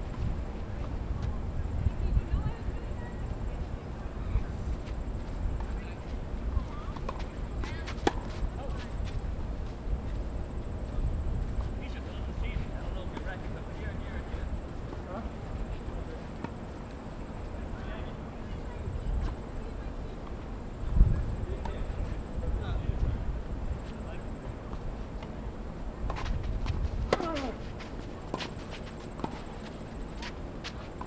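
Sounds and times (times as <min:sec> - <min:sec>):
faint distant voices: 0:10.2 - 0:26.3
low rumble on microphone: 0:20.7 - 0:23.8.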